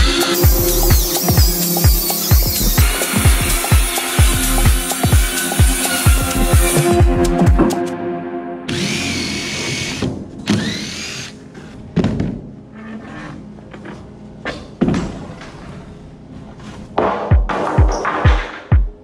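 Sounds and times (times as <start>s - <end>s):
electronic music with bass beat: 0.0s - 7.9s, 17.3s - 19.0s
circular saw motor whining: 0.1s - 6.8s, 8.7s - 11.4s.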